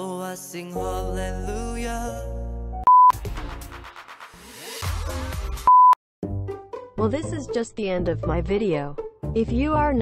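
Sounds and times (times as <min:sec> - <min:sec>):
music: 0:00.0 - 0:10.0
pure-tone test beep: 0:02.9 - 0:03.2, 0:05.7 - 0:06.0.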